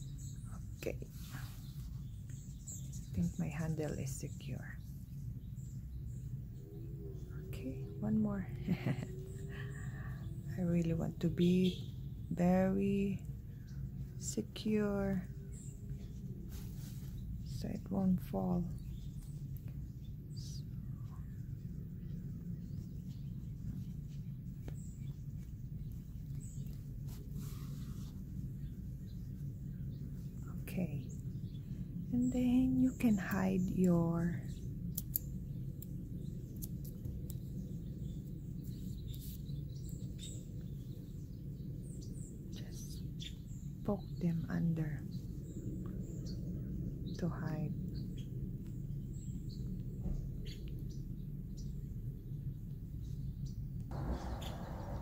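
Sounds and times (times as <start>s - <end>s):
steady low hum: 0.0s - 55.0s
faint soft rustles: 0.1s - 4.1s, 15.0s - 17.7s, 18.8s - 32.0s.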